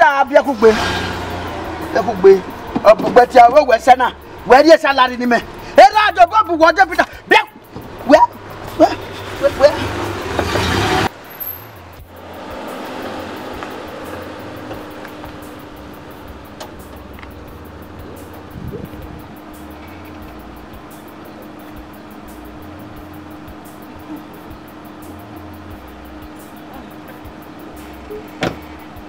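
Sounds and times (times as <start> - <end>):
soft background music: 0.0 - 11.1
car driving on dirt road: 0.1 - 5.8, 7.0 - 23.6.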